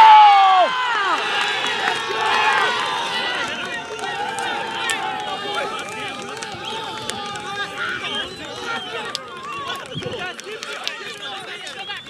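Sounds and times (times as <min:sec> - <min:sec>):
men shouting: 0:00.0 - 0:09.9.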